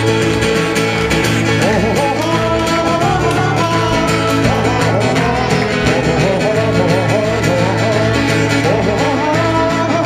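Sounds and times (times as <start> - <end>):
band playing a song: 0.0 - 10.0.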